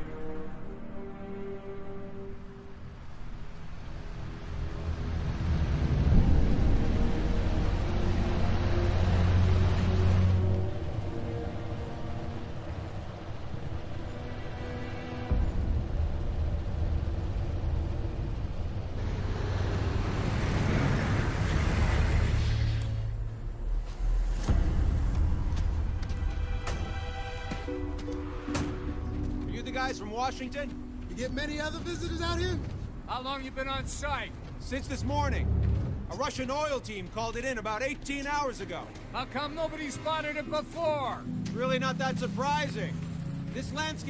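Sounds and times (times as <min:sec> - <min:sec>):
dark music score drones: 0:00.0 - 0:44.0
rushing noise: 0:02.5 - 0:27.7
heavy vehicle rumble: 0:03.6 - 0:40.0.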